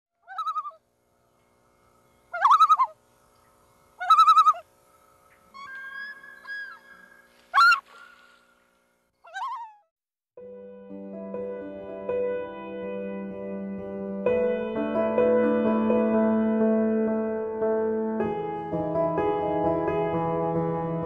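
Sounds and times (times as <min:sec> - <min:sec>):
bird calling: 0:00.2 - 0:00.8, 0:02.1 - 0:09.9.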